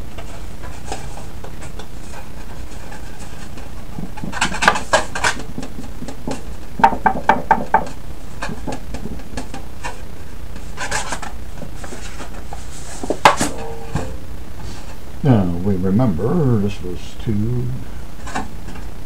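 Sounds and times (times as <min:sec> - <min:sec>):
low hum: 0:00.0 - 0:19.0
sharp knocks: 0:04.2 - 0:09.6.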